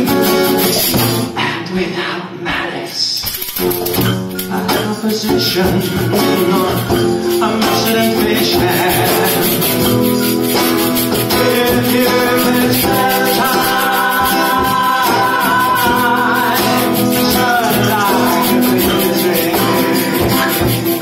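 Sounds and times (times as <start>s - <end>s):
hand percussion: 0.0s - 1.4s, 3.2s - 21.0s
strummed guitar: 0.0s - 1.4s, 3.2s - 21.0s
men singing held notes: 4.4s - 10.4s, 11.2s - 21.0s.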